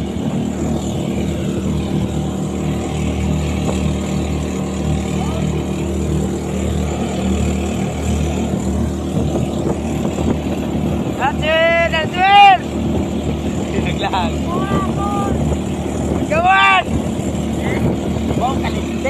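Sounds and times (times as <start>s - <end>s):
boat engine running: 0.0s - 19.0s
water rushing along hull: 0.0s - 19.0s.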